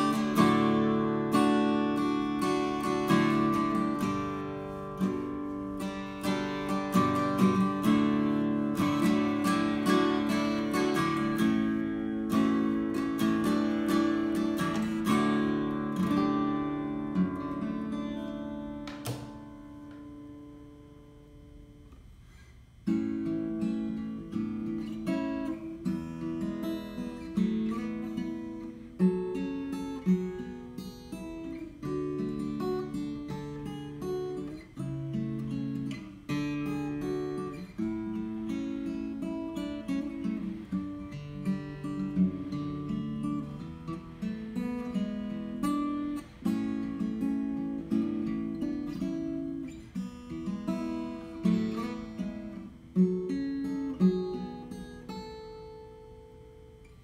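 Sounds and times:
acoustic guitar playing: 0.0 - 57.0.

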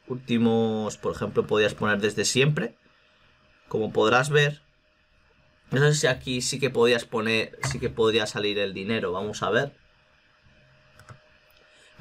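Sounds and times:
computer mouse clicking: 11.0 - 11.2.

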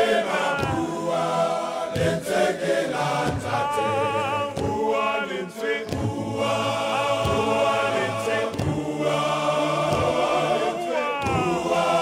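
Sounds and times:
men's choir singing: 0.0 - 12.0.

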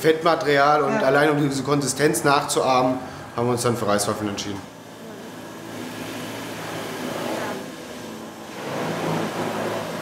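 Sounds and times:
food mixer humming: 2.3 - 10.0.

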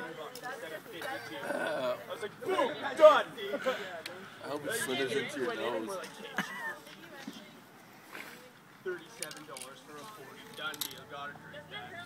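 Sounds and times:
people talking: 0.0 - 7.6.

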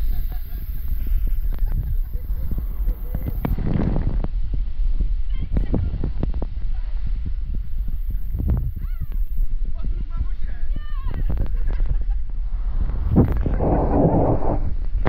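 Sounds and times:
rushing water rumble: 11.2 - 15.0.

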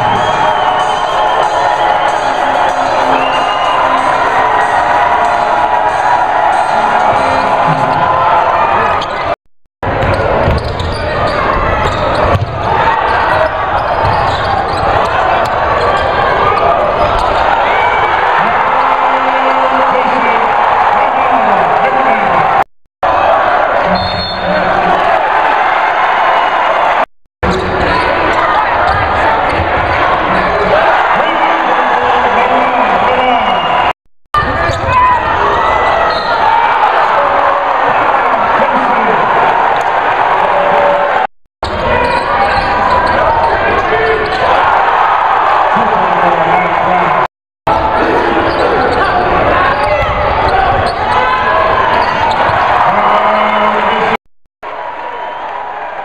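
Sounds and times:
basketball bouncing on court: 9.9 - 16.1.

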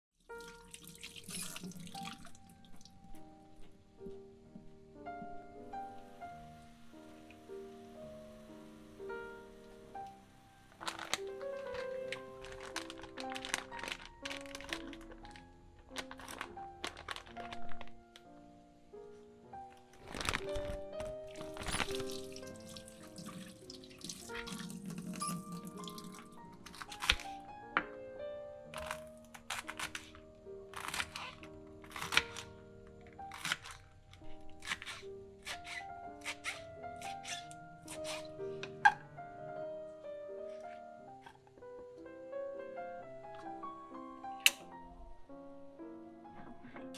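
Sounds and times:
soft piano music: 0.2 - 46.9
tap water running into sink: 0.3 - 2.9, 21.5 - 26.3
water splashing over leafy greens: 21.3 - 27.3.

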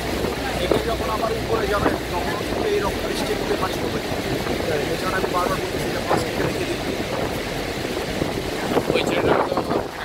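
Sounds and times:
churning river water: 0.0 - 10.0
wind buffeting microphone: 0.0 - 10.0
people's voices: 0.2 - 7.5.

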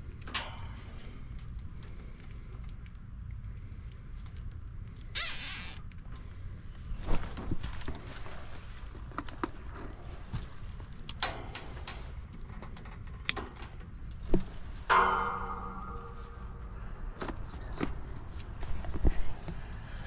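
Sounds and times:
hand tools clicking and knocking: 11.1 - 14.3
metal clank ringing: 14.9 - 17.0.

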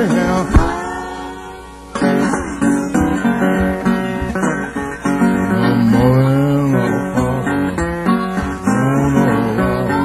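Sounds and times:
fingerpicked acoustic blues guitar: 0.0 - 10.0.

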